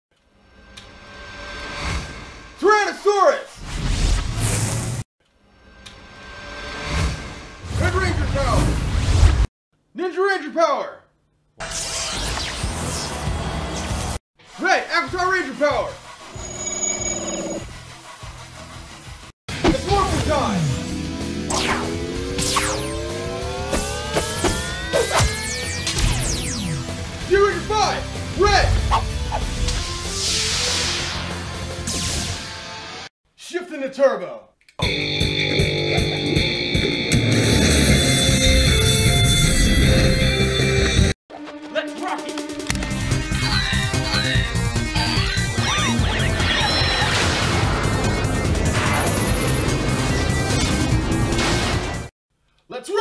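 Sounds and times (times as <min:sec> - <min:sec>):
background music: 0:19.5 - 0:33.0, 0:34.8 - 0:52.1
quick downward whooshes and hits: 0:21.5 - 0:26.7
electronic tone rising in pitch: 0:21.5 - 0:26.9.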